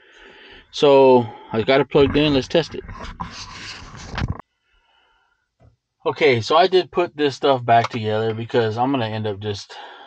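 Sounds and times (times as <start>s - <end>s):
rustling and scraping of wiring: 1.7s - 4.4s.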